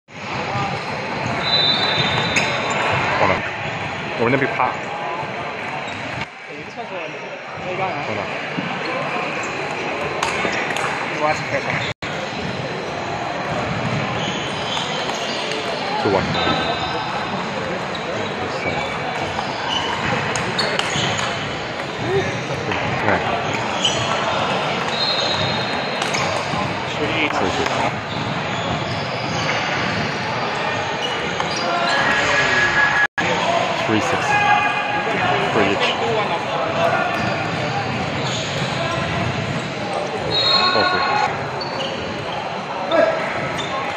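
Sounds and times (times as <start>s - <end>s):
murmur of background voices: 0.1s - 43.9s.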